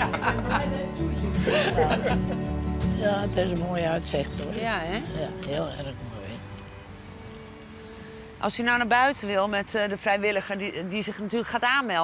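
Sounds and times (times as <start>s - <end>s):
faint rain-like hiss: 0.0s - 12.0s
soft background music: 0.0s - 12.0s.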